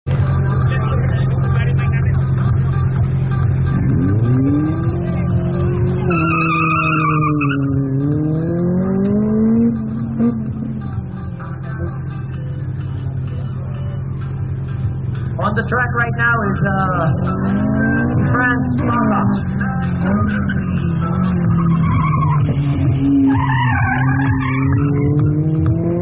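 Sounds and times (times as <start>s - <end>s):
car engine revving: 0.0s - 26.0s
tyre squeal: 5.9s - 7.9s, 18.9s - 25.3s.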